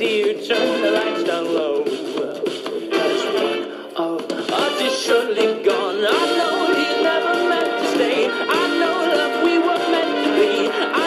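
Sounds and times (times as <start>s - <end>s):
love song with singing voice: 0.0s - 11.0s.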